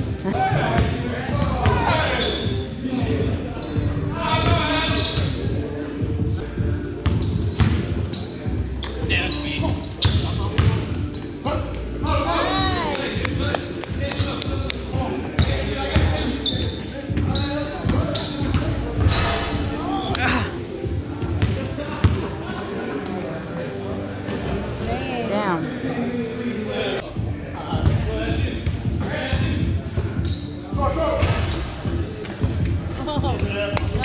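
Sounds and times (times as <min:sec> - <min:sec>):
sneakers squeaking: 0:00.0 - 0:25.6, 0:27.6 - 0:34.0.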